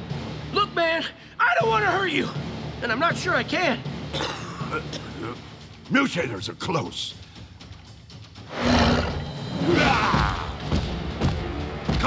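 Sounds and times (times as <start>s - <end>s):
background music: 0.0s - 12.0s
creature roaring: 8.6s - 10.6s.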